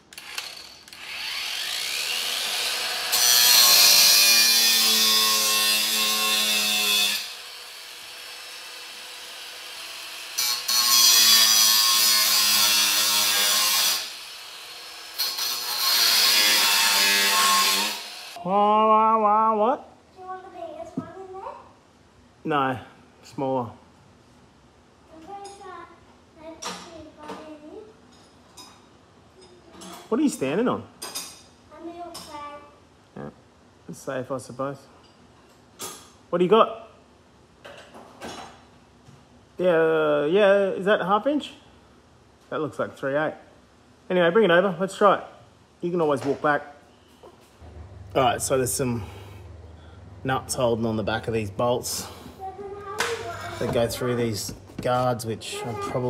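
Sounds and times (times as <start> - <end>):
angle grinder whining: 0.1 - 18.4
grinder cutting metal screeching: 0.2 - 18.4
faint child's voice: 20.2 - 21.8, 52.3 - 53.8, 55.5 - 56.0.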